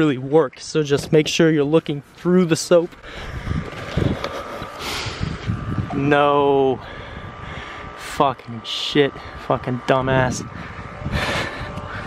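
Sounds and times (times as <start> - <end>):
low rumbling on microphone: 3.0 - 12.0.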